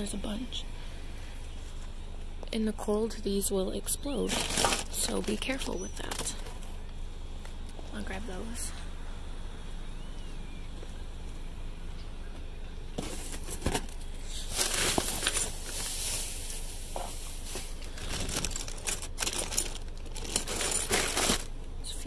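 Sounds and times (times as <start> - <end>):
plastic packaging crinkling: 4.3 - 5.4, 13.1 - 16.6, 17.3 - 21.6.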